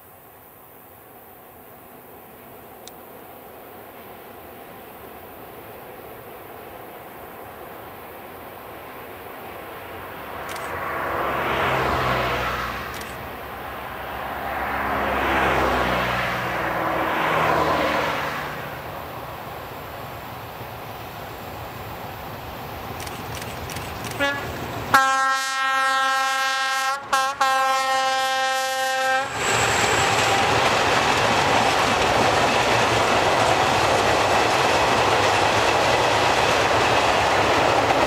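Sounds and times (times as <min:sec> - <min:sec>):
diesel locomotive engine rumble: 0:00.2 - 0:38.0.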